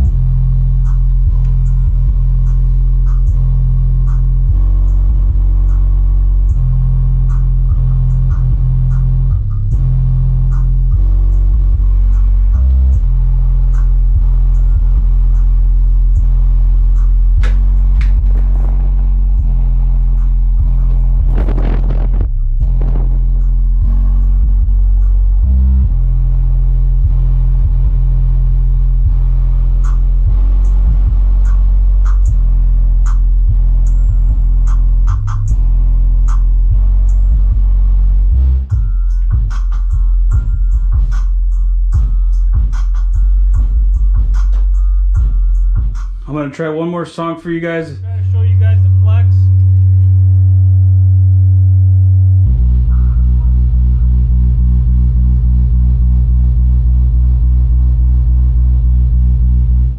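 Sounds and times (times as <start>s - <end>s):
bass-heavy music through subwoofer: 0.0s - 59.9s
light percussion ticks: 0.9s - 3.5s.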